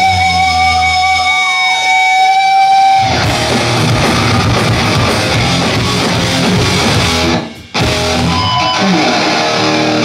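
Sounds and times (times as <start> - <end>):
electric guitar feedback ringing: 0.0 - 10.0.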